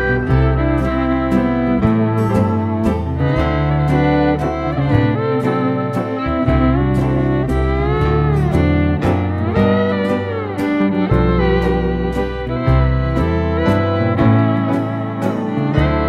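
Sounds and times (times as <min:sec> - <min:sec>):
bass: 0:00.0 - 0:16.0
fiddle: 0:00.0 - 0:16.0
steel guitar sliding: 0:00.0 - 0:16.0.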